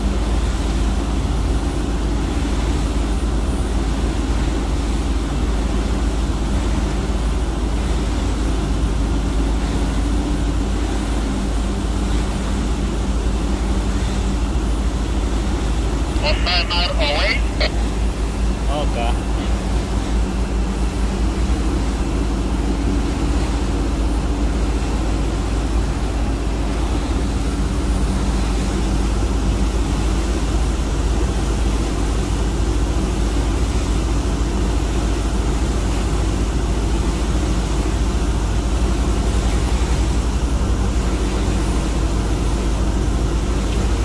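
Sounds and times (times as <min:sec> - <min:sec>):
boat engine drone: 0:00.0 - 0:44.0.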